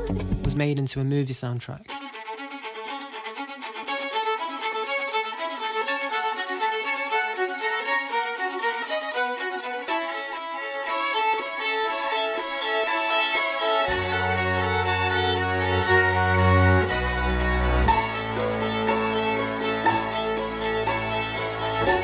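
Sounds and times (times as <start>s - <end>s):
smooth legato violin line: 1.9s - 22.0s
violins playing rapid bouncing notes: 1.9s - 22.0s.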